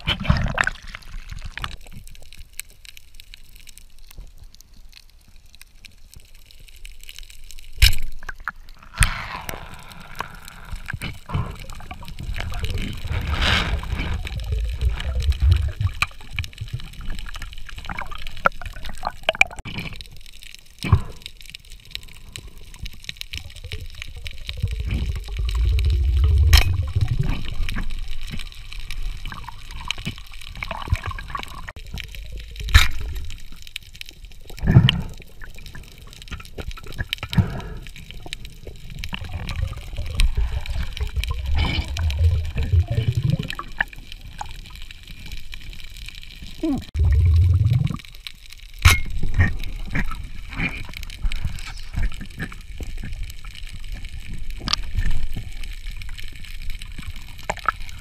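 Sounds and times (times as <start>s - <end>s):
diver exhaling bubbles underwater: 8.8s - 19.7s, 23.4s - 33.5s, 36.8s - 44.5s, 46.6s - 48.2s.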